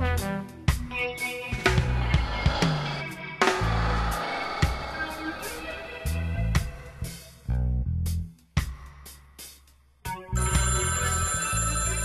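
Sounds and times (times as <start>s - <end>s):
desk telephone ringing: 10.4s - 12.0s.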